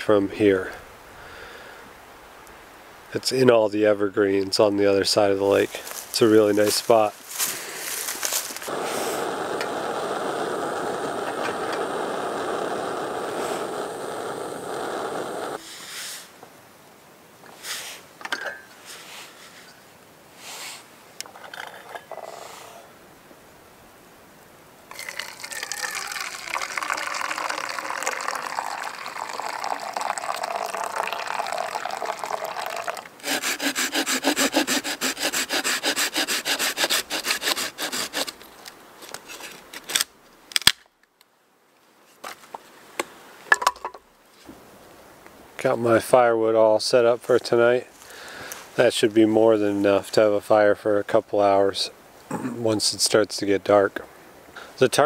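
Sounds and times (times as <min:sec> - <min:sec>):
camping stove burning: 0:07.3 - 0:15.6, 0:24.9 - 0:34.8
water pouring into a mug: 0:24.9 - 0:33.1
hand saw cutting a log: 0:33.2 - 0:38.4.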